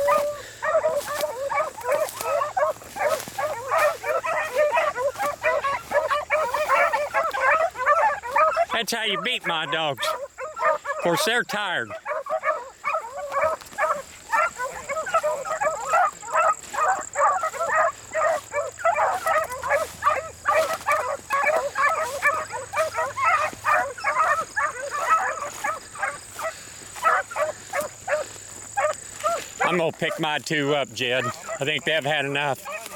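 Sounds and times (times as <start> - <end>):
hounds baying: 0.0 - 32.9.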